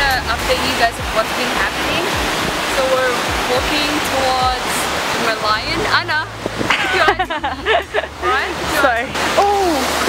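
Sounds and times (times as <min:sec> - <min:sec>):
low wind buffeting: 0:00.0 - 0:10.0
wind hissing over microphone: 0:00.0 - 0:10.0.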